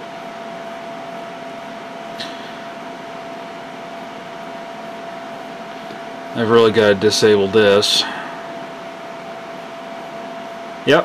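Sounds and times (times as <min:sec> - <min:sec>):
computer cooling fans rushing: 0:00.0 - 0:11.0
thin steady whine: 0:00.0 - 0:11.0.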